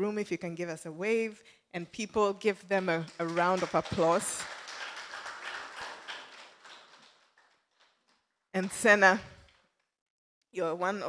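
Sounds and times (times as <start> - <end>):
audience applause: 3.1 - 8.2.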